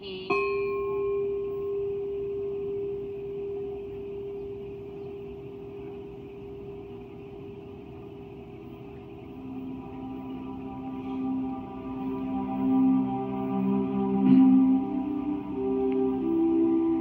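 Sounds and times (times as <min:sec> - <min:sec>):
lower steady tone: 0:00.0 - 0:17.0
large bell ringing: 0:00.3 - 0:15.0.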